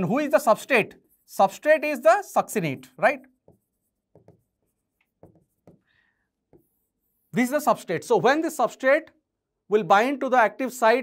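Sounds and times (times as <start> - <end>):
pen strokes on display board: 0.5 - 1.7, 2.8 - 7.5.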